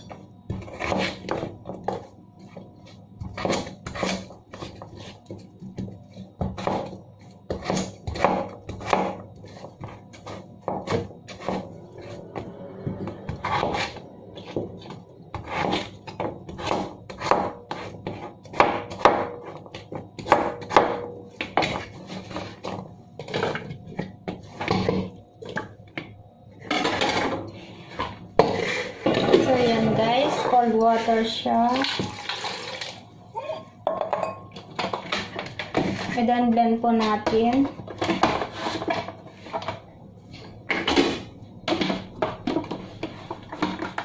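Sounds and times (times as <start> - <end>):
kitchenware knocking and clinking: 33.8 - 36.0.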